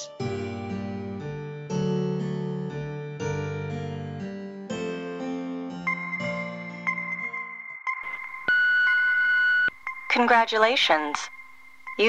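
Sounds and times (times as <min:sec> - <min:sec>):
steady electronic beep: 0:05.9 - 0:12.0.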